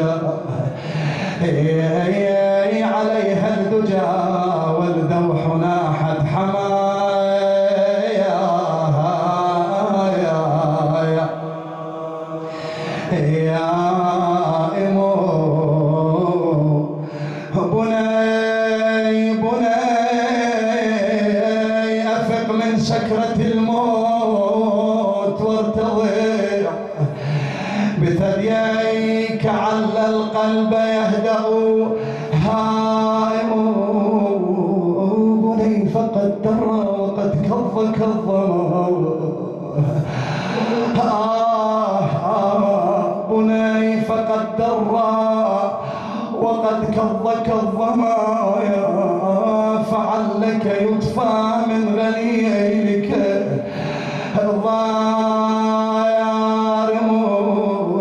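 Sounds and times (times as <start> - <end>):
man chanting a lament: 0.0 - 58.0
sharp breath: 0.7 - 1.4, 12.5 - 13.1, 17.0 - 17.6, 27.0 - 28.0, 32.0 - 32.4, 40.0 - 41.0, 45.8 - 46.4, 53.6 - 54.4.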